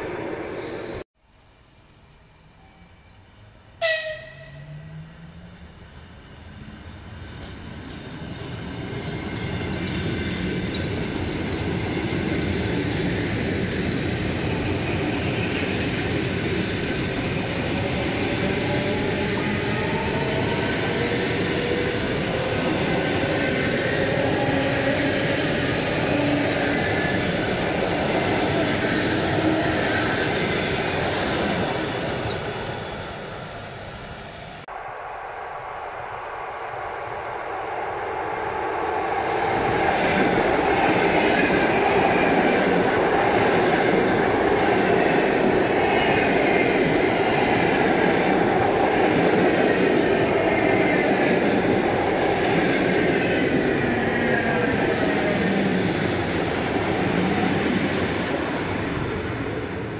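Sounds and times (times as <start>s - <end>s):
electric train passing: 2.5s - 59.9s
train wheels rolling on rails: 4.9s - 34.6s, 35.6s - 59.9s.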